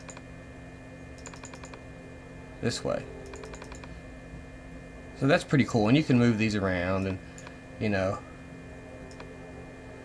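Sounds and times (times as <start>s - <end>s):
faint electrical hum: 0.0s - 10.0s
keyboard key clicks: 1.2s - 1.8s, 3.3s - 3.9s.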